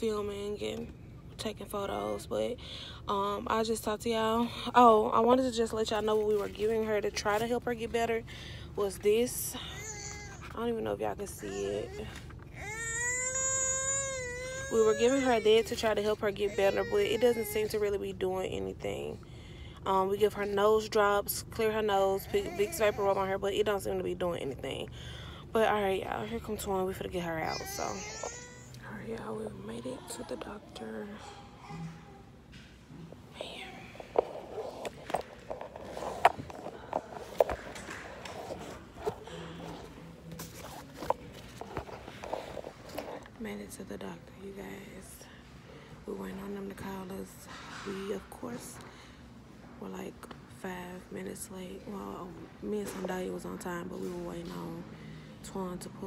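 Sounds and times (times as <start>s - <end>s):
infant crying: 12.6s - 15.7s.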